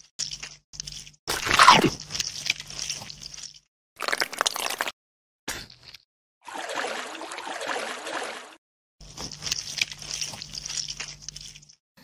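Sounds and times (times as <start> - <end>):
crunching bite sound effect: 1.3 - 5.0.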